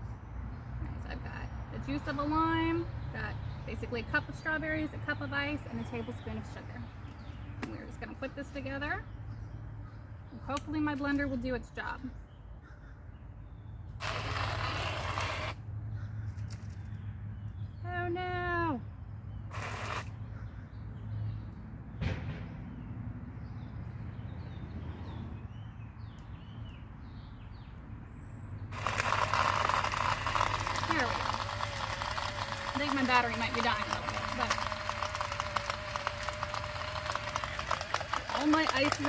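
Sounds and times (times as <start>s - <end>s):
blender motor hum: 14.0s - 15.6s, 19.5s - 20.1s, 28.7s - 39.0s
ice grinding against blender blades: 14.0s - 15.6s, 19.5s - 20.1s, 28.7s - 39.0s.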